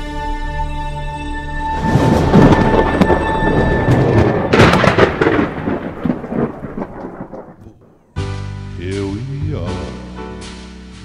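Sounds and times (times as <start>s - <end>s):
thunder cracking and rumbling: 1.7s - 8.2s.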